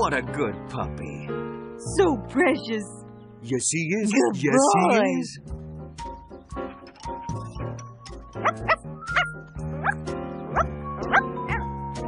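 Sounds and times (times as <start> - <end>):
light background music: 0.0 - 12.0
cartoon puppy yipping: 8.4 - 10.0, 10.6 - 11.8.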